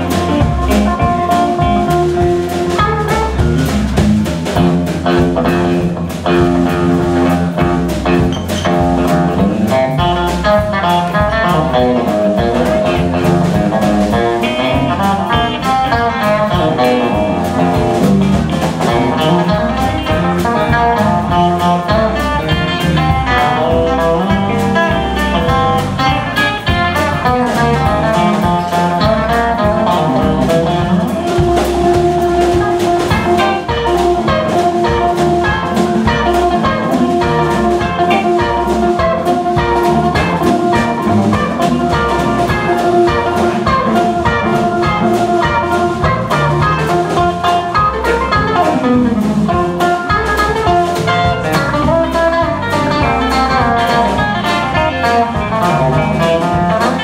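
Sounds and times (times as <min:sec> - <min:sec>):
drum kit beat: 0:00.0 - 0:57.0
electric guitar lead: 0:00.0 - 0:57.0.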